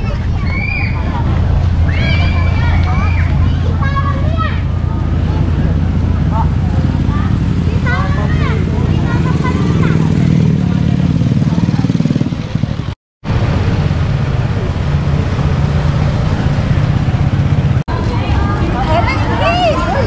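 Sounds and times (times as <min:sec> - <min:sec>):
small motorcycle engines passing: 0:00.0 - 0:20.0.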